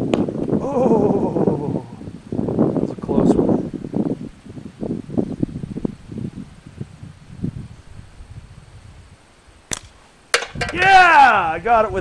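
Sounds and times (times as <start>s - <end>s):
ball striking a tin can: 9.7s - 10.9s.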